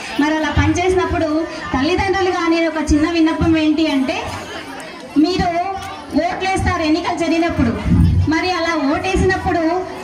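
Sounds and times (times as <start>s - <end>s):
woman speaking into microphone: 0.0s - 4.4s, 5.2s - 10.0s.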